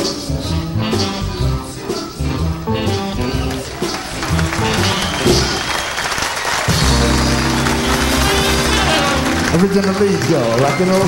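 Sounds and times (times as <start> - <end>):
backing band playing: 0.0 - 11.0
audience applauding: 2.8 - 11.0.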